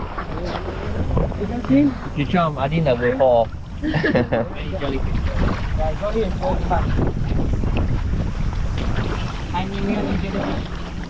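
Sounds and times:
water and boat noise: 0.0 - 11.0
wind buffeting microphone: 0.0 - 11.0.

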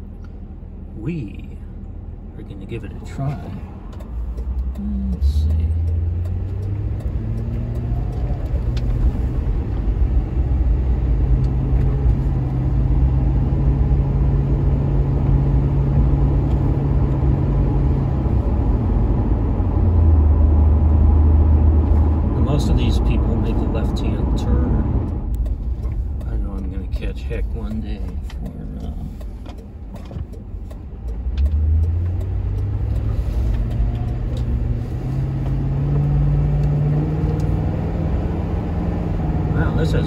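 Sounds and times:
car engine accelerating: 0.0 - 40.0
road noise inside car: 0.0 - 40.0.

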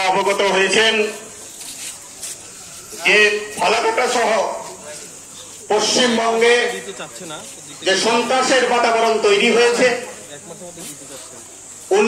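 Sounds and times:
man speaking: 0.0 - 1.4, 3.0 - 12.0
background noise: 0.0 - 12.0.

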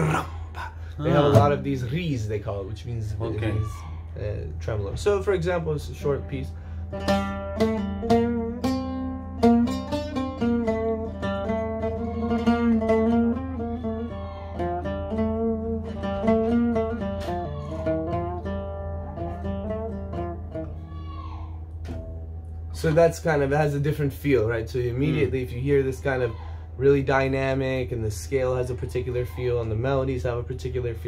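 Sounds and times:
oud melody with tremolo: 4.8 - 20.8.

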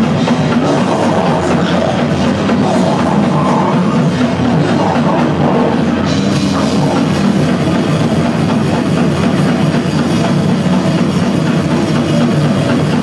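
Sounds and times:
death metal band playing live: 0.0 - 13.0.

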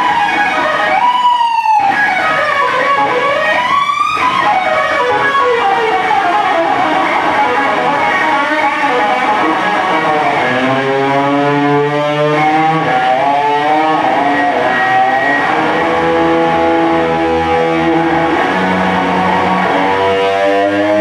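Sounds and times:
overdriven electric guitar blues lead: 0.0 - 21.0
electric bass: 2.0 - 21.0.

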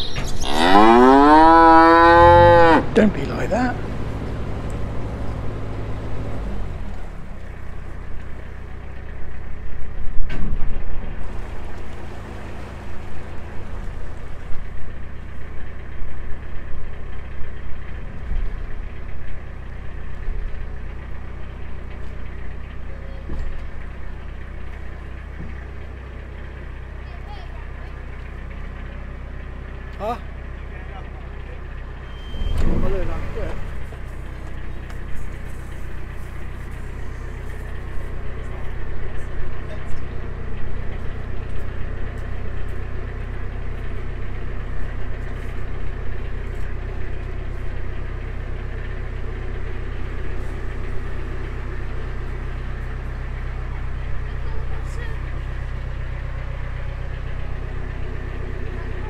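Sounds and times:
boat engine running at low revs: 0.0 - 59.0.

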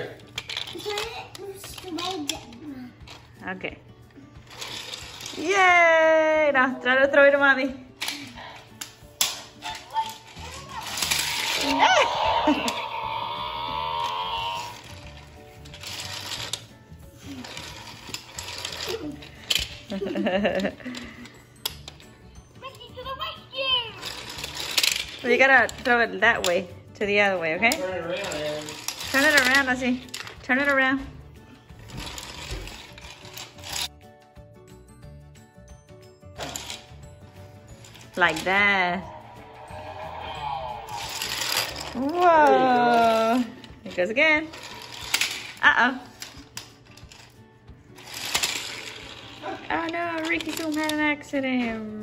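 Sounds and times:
toy electronic sound effects and music: 9.6 - 16.6, 39.3 - 42.2.

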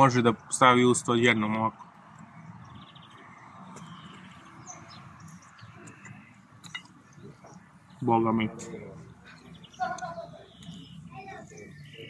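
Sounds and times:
bird chirps: 1.8 - 12.0.

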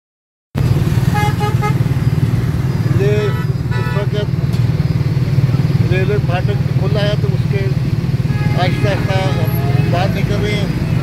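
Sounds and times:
motorcycle engine running: 0.6 - 11.0
horn beeps: 1.1 - 4.4, 8.2 - 10.4
people's voices: 2.9 - 4.5, 8.5 - 10.9.

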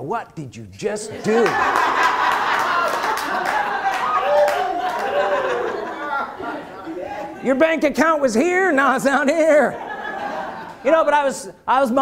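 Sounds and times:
audience laughing and talking: 1.0 - 8.4, 9.3 - 11.1
scattered claps: 1.4 - 5.2.

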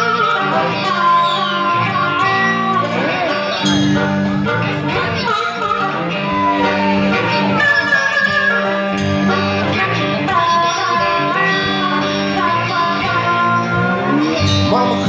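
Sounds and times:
drums: 0.0 - 15.0
electric bass guitar: 0.0 - 15.0
harmonica with bent notes: 0.0 - 15.0.

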